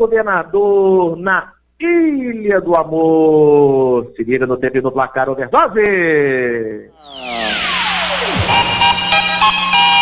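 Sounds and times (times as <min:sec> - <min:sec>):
electronic musical tones: 0:07.0 - 0:10.0
falling swoosh: 0:07.0 - 0:10.0.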